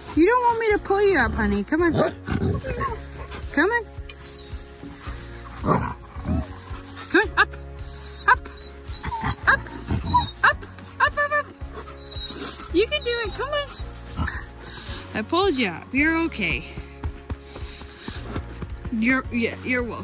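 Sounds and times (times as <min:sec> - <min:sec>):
background music: 0:00.0 - 0:20.0
small dog whining: 0:08.0 - 0:10.6, 0:11.8 - 0:14.5.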